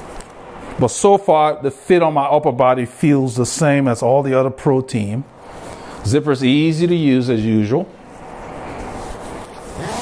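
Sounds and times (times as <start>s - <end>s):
zipper being drawn up: 9.5s - 10.0s.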